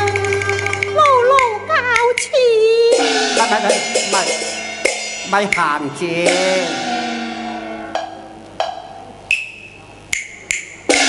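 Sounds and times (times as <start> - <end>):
opera band playing: 0.0 - 8.5
sharp wooden percussion strikes: 0.0 - 11.0.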